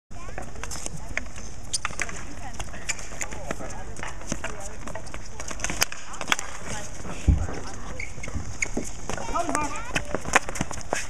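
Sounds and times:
hockey sticks clacking on ball: 0.3s - 11.0s.

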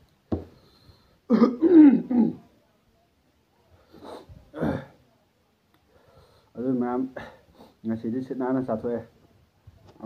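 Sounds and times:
man clearing his throat: 1.3s - 2.4s.

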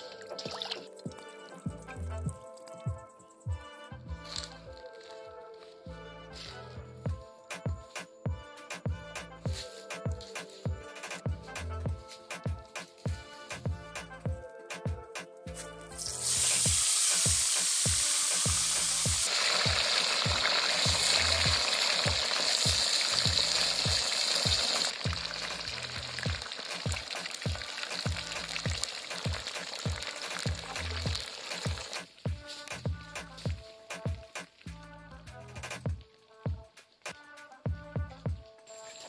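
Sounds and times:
fish sizzling in hot oil: 16.0s - 32.2s.

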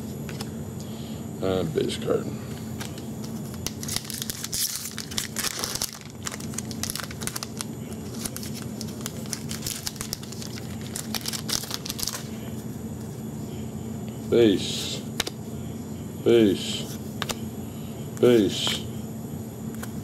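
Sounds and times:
foil wrapper crinkling and tearing: 2.8s - 12.3s.

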